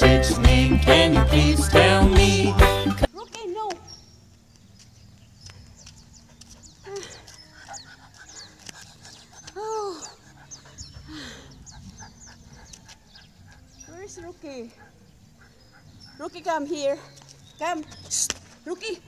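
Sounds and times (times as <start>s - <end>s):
woman's wordless voice: 3.1s - 3.8s, 9.5s - 10.2s, 13.8s - 14.8s, 16.2s - 19.0s.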